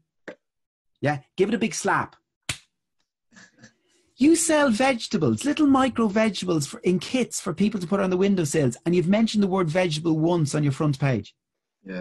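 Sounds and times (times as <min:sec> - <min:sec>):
palm slapping forehead: 0:02.4 - 0:02.8.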